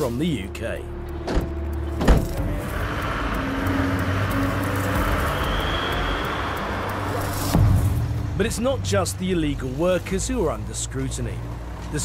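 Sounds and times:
van engine running: 0.0s - 12.0s
van doors slamming: 1.2s - 2.5s.

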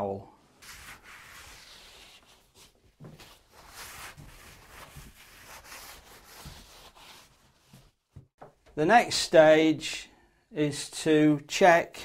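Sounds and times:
sponge rubbing window frame: 0.6s - 8.0s.

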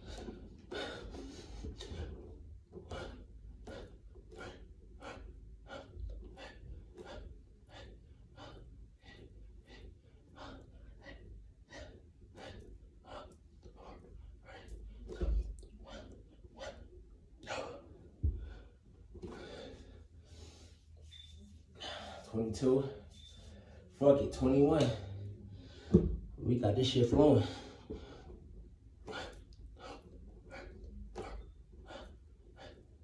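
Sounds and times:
man breathing hard: 0.0s - 24.0s, 27.2s - 33.0s.

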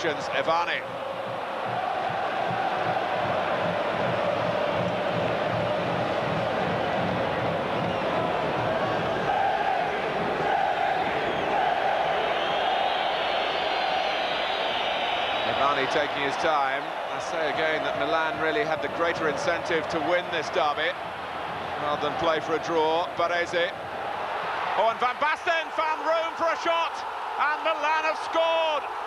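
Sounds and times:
stadium crowd din: 0.0s - 29.0s
crowd chanting: 8.1s - 12.9s.

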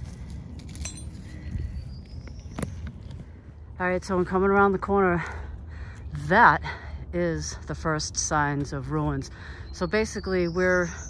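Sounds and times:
light metallic clink: 0.6s - 1.2s.

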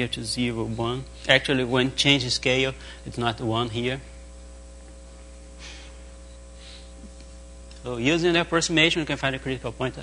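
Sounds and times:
man speaking: 0.0s - 4.1s, 7.8s - 10.0s
electrical hum: 0.0s - 10.0s.

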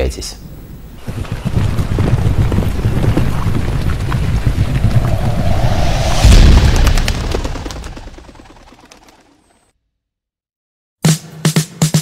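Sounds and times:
wind-like rushing: 1.1s - 8.8s
dense low rumble: 4.0s - 8.8s.

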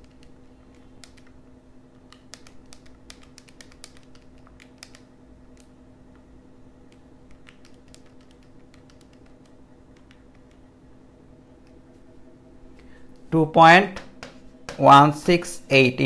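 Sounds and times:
calculator keys clicking: 0.0s - 6.2s, 6.9s - 10.7s
low steady hum: 0.0s - 16.0s.

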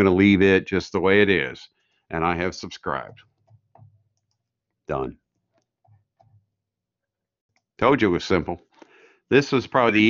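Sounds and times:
man speaking: 0.0s - 3.2s, 4.9s - 5.2s, 7.8s - 8.6s, 9.3s - 10.0s
computer mouse clicks: 3.3s - 4.5s.

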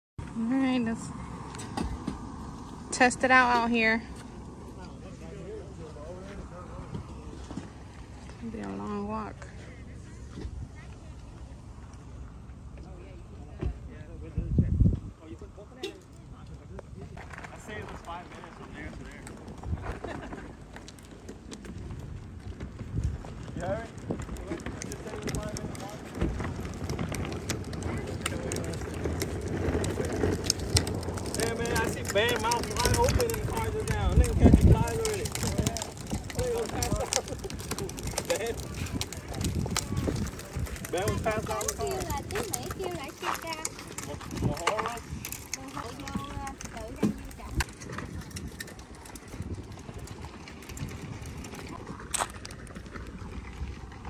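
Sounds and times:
distant voices talking: 0.2s - 54.0s
low outdoor rumble: 0.2s - 54.0s
wind hitting microphone: 13.5s - 54.0s.

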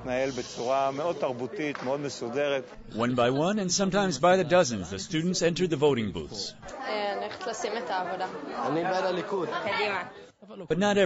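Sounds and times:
students chattering: 2.8s - 11.0s.

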